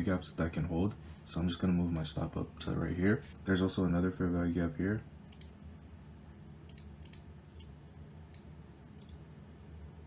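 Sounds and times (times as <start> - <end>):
low steady hum: 0.0 - 10.0
computer mouse clicking: 5.3 - 5.6, 6.6 - 9.2.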